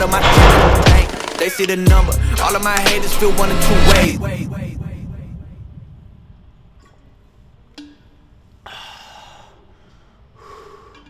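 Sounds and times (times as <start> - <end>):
man panting: 8.7 - 11.0.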